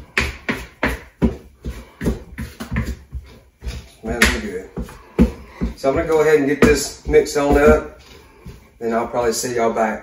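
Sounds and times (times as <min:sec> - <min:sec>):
wooden spoon stirring dough: 0:00.0 - 0:10.0.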